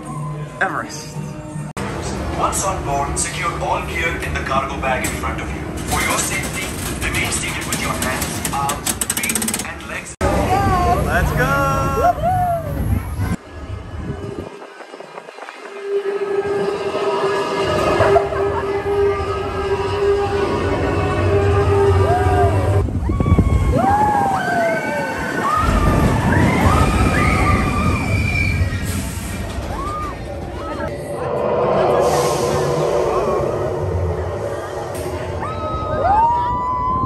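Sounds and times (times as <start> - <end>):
roller coaster running on track: 1.8 - 37.0.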